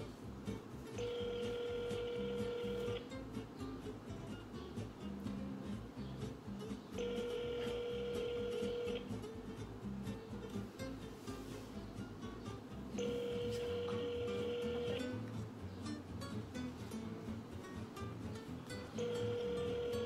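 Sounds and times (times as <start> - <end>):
telephone ringback tone: 1.0 - 3.0, 7.0 - 9.1, 13.0 - 15.2, 19.0 - 20.0.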